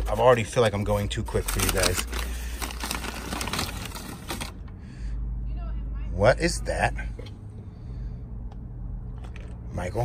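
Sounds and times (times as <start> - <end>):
envelope crinkling and rustling: 0.0 - 4.6.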